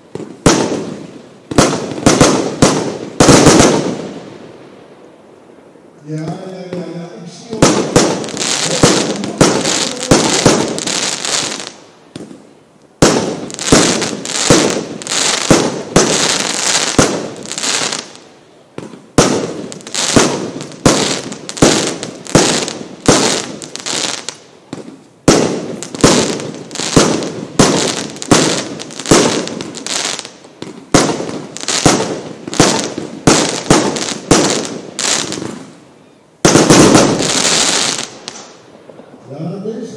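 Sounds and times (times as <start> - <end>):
firework cake firing shots: 1.5 - 4.0, 7.6 - 11.6, 13.0 - 17.4, 18.8 - 23.6, 25.3 - 29.6, 30.6 - 35.6, 36.4 - 38.0.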